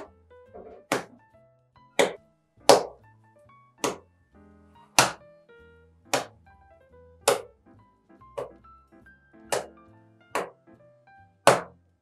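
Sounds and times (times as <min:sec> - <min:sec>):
dough thudding on wooden table: 0:00.0 - 0:01.2, 0:02.0 - 0:03.0, 0:03.8 - 0:04.0, 0:05.0 - 0:05.2, 0:06.1 - 0:06.4, 0:10.4 - 0:10.6, 0:11.5 - 0:11.8
background music: 0:00.0 - 0:12.0.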